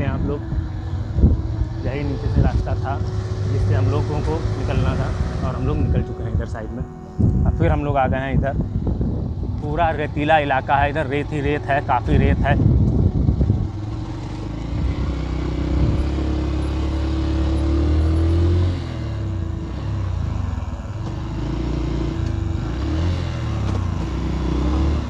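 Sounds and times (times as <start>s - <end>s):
motorcycle engine revving: 0.0s - 25.0s.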